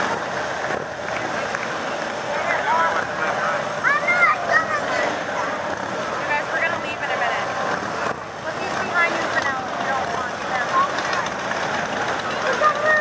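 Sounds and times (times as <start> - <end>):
crowd voices: 0.0 - 13.0
motorcycles riding slowly past: 0.0 - 13.0.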